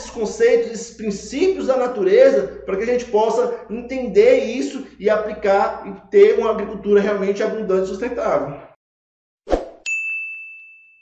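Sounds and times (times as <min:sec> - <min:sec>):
brief swish: 0:09.5 - 0:09.8
bright bell-like ding: 0:09.8 - 0:11.0.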